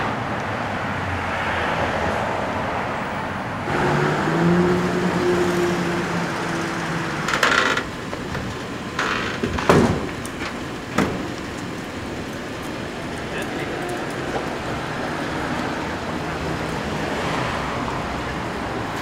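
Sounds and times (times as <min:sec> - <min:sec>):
engine humming: 0:03.0 - 0:19.0
sharp knocks: 0:07.8 - 0:11.4.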